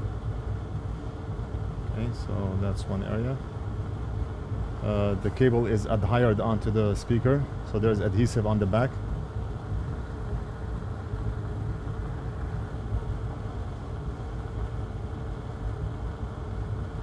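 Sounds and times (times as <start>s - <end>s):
low machine hum: 0.0s - 17.0s.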